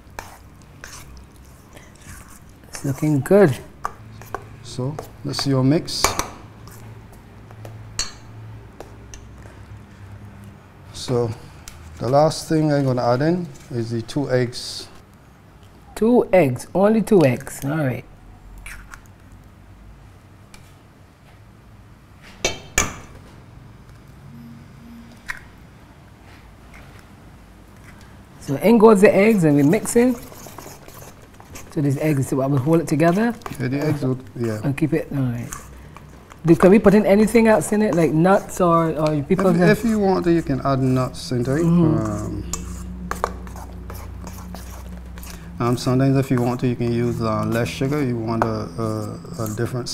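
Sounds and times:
spoon stirring wet batter: 0:00.0 - 0:06.9, 0:27.8 - 0:49.8
low hum: 0:24.0 - 0:25.9.

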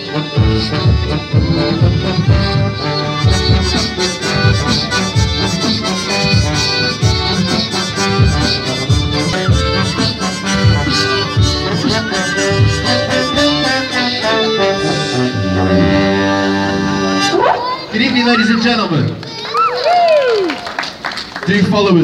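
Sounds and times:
brass street band playing: 0:00.0 - 0:19.0.

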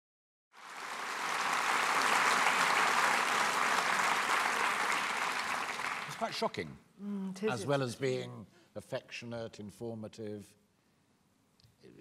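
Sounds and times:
audience applauding: 0:00.6 - 0:06.6.

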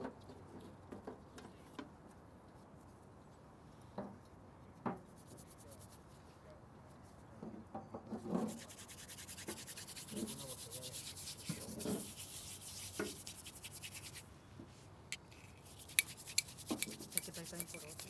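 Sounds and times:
brush scrubbing rough stone: 0:08.3 - 0:14.3, 0:15.6 - 0:18.0.

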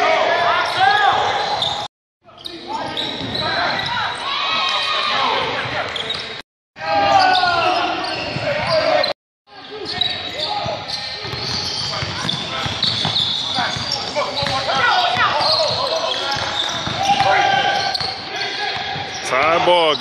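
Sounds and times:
players calling out: 0:00.0 - 0:20.0
shoe squeaks: 0:00.7 - 0:04.2, 0:05.6 - 0:06.4, 0:07.1 - 0:20.0.

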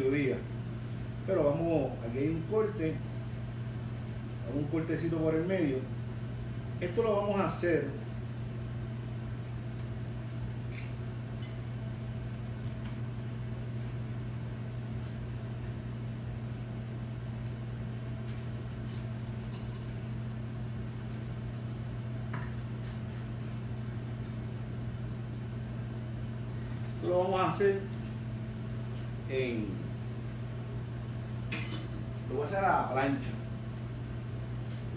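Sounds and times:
low electrical hum: 0:00.0 - 0:34.9.

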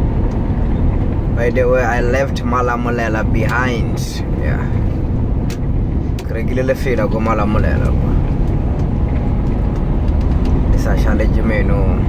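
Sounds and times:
truck engine and tyre rumble: 0:00.0 - 0:12.0.

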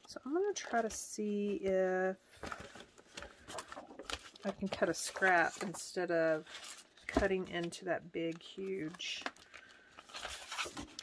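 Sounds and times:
faint paper rustling: 0:00.0 - 0:11.0.

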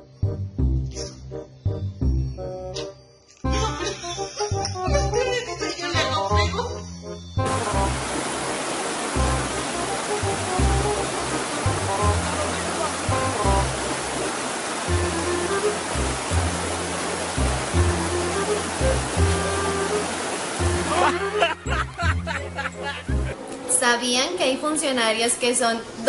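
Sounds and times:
river rushing: 0:07.5 - 0:23.4
music with pulsing bass: 0:09.2 - 0:14.0, 0:20.6 - 0:23.4.

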